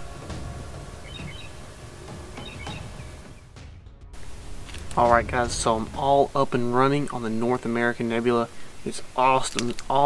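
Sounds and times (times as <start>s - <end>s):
low rumble: 0.0s - 8.8s
faint night ambience: 0.0s - 10.0s.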